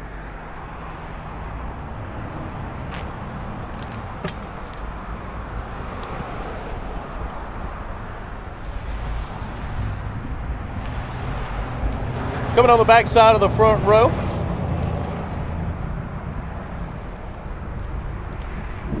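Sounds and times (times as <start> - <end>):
highway traffic rushing: 0.0 - 19.0.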